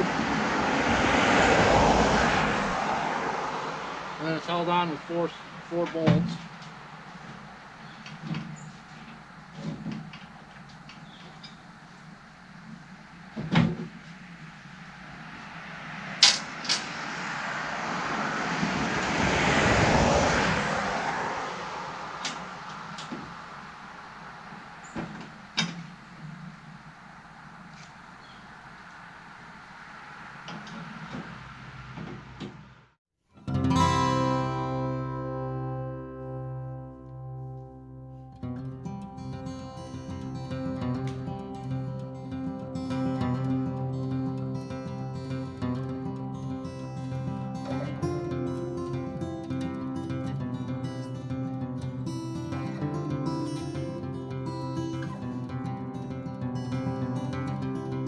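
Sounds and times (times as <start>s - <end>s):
vehicle passing: 0.0s - 33.0s, 38.4s - 58.0s
acoustic guitar music: 33.3s - 58.0s.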